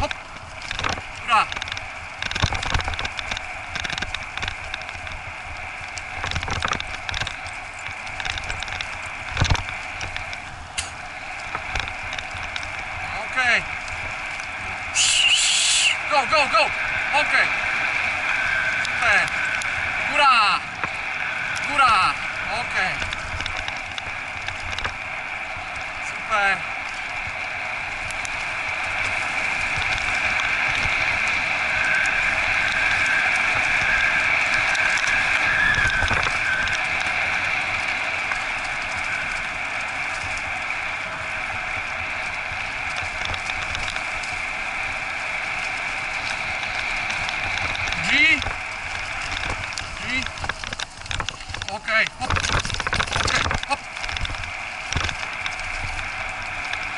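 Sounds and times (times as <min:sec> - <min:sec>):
cart wheels rolling on dirt: 0:00.0 - 0:56.9.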